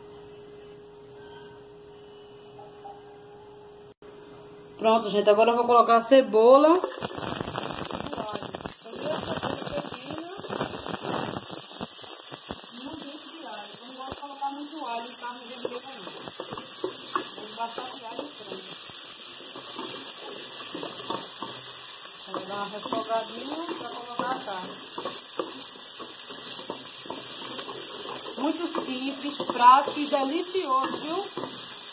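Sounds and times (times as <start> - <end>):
vegetables sizzling in hot oil: 6.7 - 31.9.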